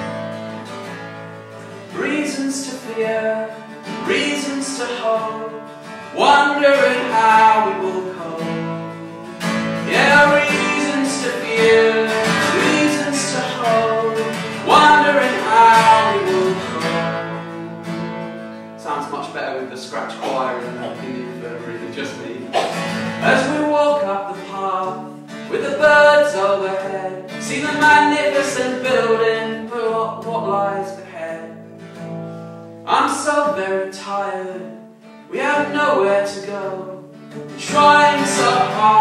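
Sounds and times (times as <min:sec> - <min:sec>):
acoustic guitar strumming: 0:00.0 - 0:39.0.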